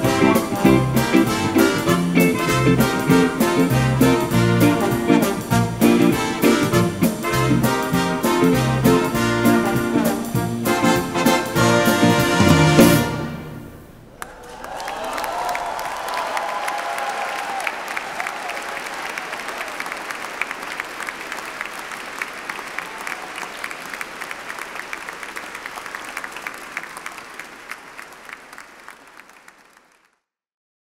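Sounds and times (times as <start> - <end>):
large crowd applauding: 14.1 - 30.3.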